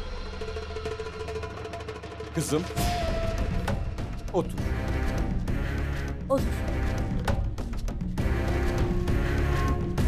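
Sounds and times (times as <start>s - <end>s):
dramatic score music: 0.0s - 10.0s.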